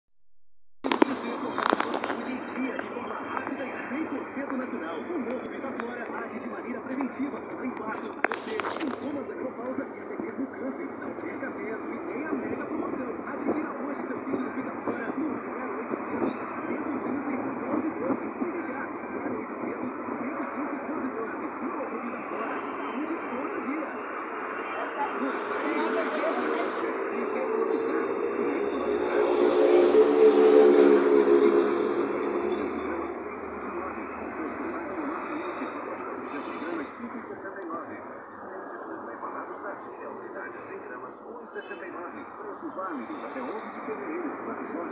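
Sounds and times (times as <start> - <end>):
deep engine hum: 0.8 - 41.3
road noise inside car: 0.9 - 44.9.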